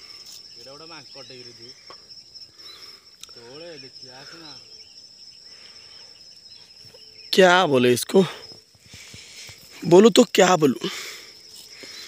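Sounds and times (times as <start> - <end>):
insect trilling: 0.0 - 12.0.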